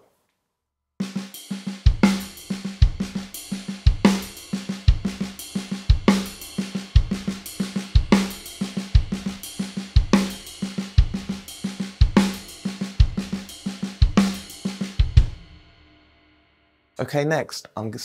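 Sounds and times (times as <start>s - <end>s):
hi-hat strikes: 1.0s - 15.7s
bass drum beat: 1.7s - 15.6s.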